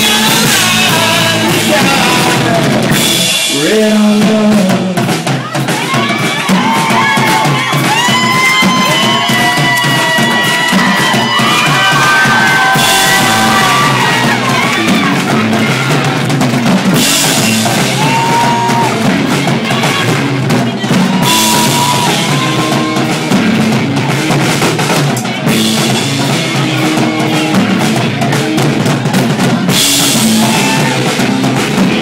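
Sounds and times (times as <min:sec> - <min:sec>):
live rock band playing: 0:00.0 - 0:32.0.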